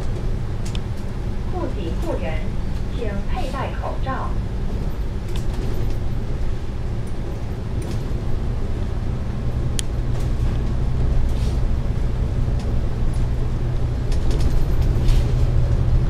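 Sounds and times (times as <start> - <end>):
bus engine drone: 0.0 - 16.0
rattles and clicks of bus body: 0.0 - 16.0.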